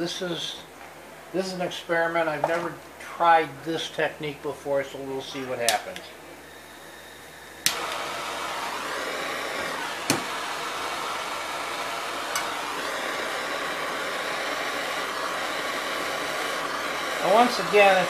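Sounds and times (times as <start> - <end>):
gas torch hissing: 6.3 - 18.0
gas torch igniter click: 7.6 - 8.1, 9.6 - 10.4, 12.3 - 12.9.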